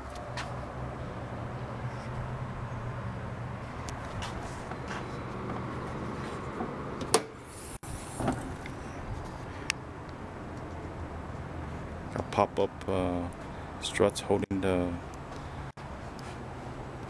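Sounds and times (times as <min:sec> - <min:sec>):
hood lifting thump: 0:06.6 - 0:08.6.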